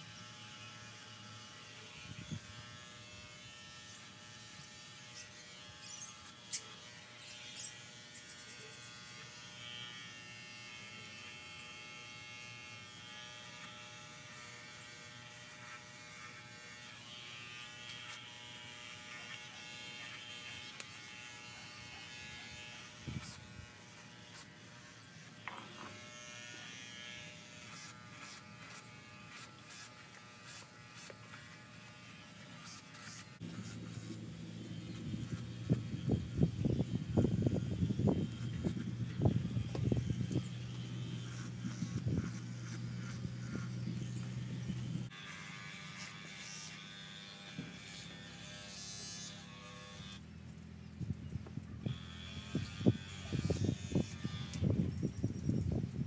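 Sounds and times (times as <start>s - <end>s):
electric clippers buzzing: 0.0s - 56.0s.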